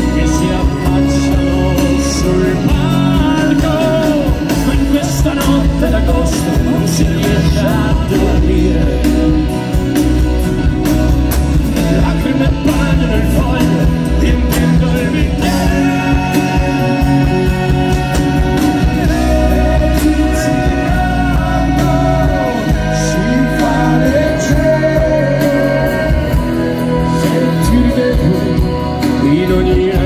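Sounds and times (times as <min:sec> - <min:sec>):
bass guitar: 0:00.0 - 0:30.0
drums: 0:00.0 - 0:30.0
keyboard chords: 0:00.0 - 0:30.0
live rock band playing: 0:00.0 - 0:30.0.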